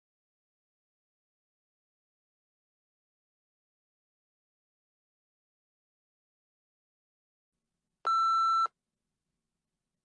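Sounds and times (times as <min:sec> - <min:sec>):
electronic timer beep: 0:08.1 - 0:08.7.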